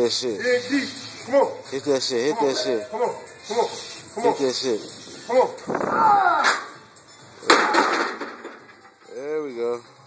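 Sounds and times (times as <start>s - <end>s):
metal clank and rattle: 7.5s - 9.0s.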